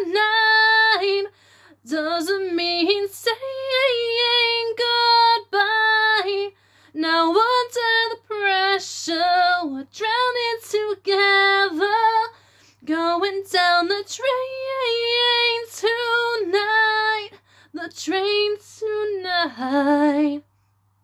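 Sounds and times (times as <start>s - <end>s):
woman singing unaccompanied: 0.0s - 20.4s.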